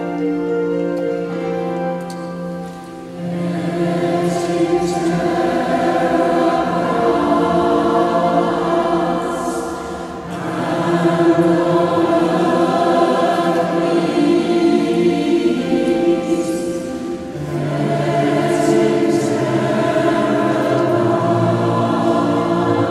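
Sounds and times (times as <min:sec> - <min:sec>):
mixed choir singing: 0:02.5 - 0:22.9.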